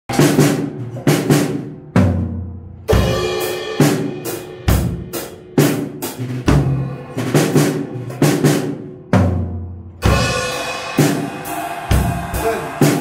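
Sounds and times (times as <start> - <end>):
drum kit playing: 0.1 - 13.0.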